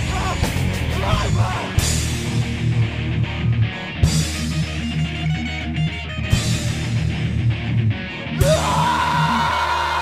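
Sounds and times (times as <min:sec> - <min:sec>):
post-hardcore band playing: 0:00.0 - 0:10.0.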